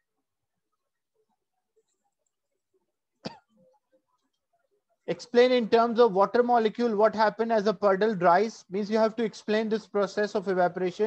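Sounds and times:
person clearing throat: 3.2 - 3.6.

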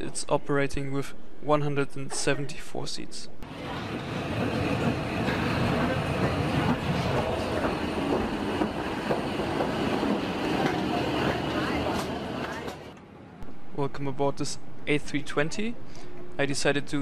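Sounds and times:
people walking rumble and clatter: 3.4 - 13.0
murmur of voices: 3.5 - 9.0.

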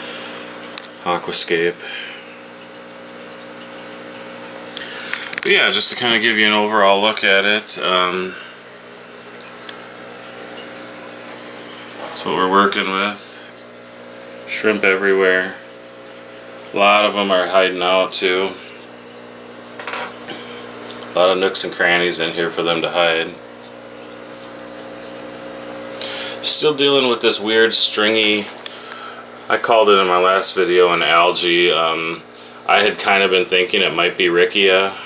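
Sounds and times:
aquarium equipment humming: 0.0 - 35.0.

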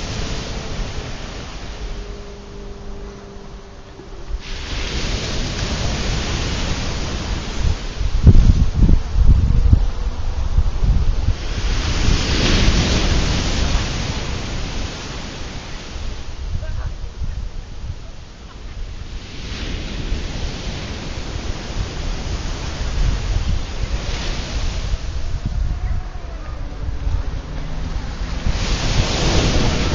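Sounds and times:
ocean surf breaking: 0.0 - 29.9
wind buffeting microphone: 0.0 - 29.9.

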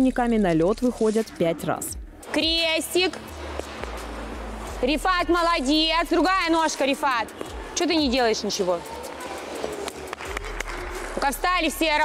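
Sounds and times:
faint children's voices echoing: 8.4 - 10.4.

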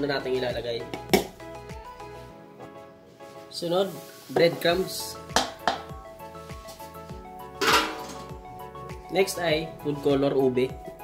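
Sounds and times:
soft background music: 0.0 - 11.0
bowl knocks: 7.6 - 8.3.

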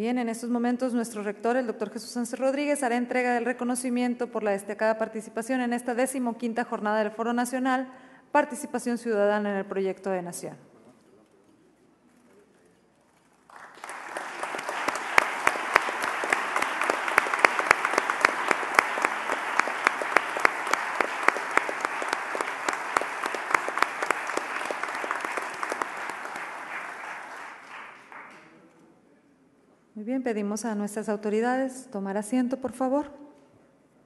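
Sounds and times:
audience applause: 13.5 - 28.5.

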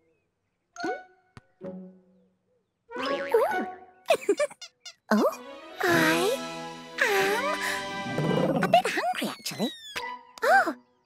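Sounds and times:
light music: 0.8 - 11.0.

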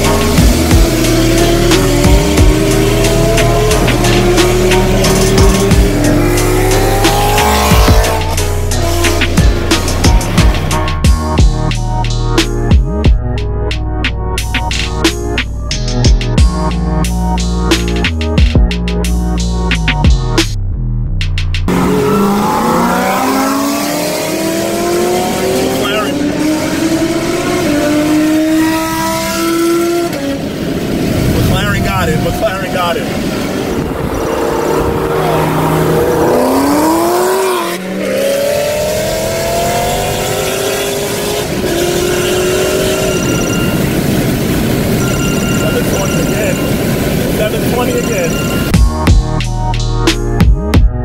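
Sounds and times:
car engines accelerating hard: 0.0 - 11.5, 21.6 - 48.9.

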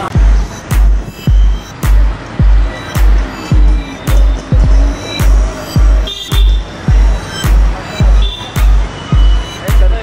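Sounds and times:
background music: 0.0 - 10.0
heavy bass kick: 0.1 - 10.0.

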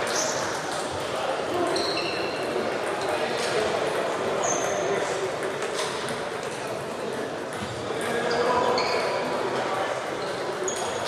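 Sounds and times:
table tennis balls clicking: 0.0 - 8.4
murmur of voices: 0.0 - 11.0.

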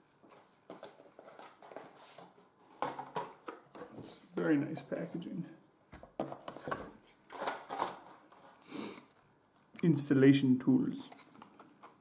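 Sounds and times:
packaging clicks and rustles: 0.3 - 3.9, 6.1 - 8.6.

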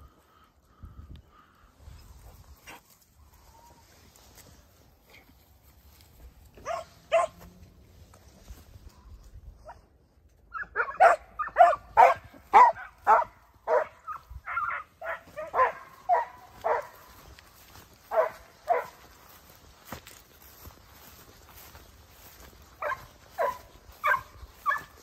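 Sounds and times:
hounds barking: 6.6 - 7.6, 10.5 - 19.8, 21.1 - 25.0.

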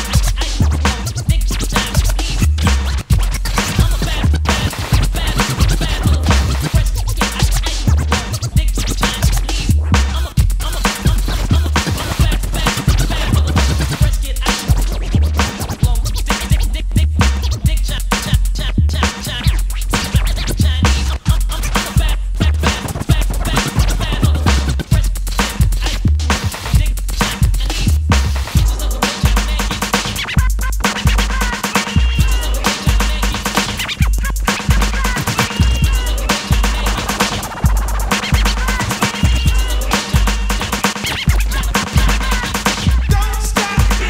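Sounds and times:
hip hop music: 0.0 - 44.0
turntable scratching: 0.0 - 44.0.

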